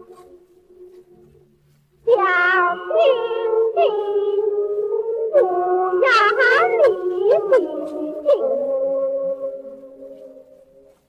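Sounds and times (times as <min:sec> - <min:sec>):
steady accompanying tone: 0:00.0 - 0:11.0
high singing voice: 0:02.0 - 0:11.0.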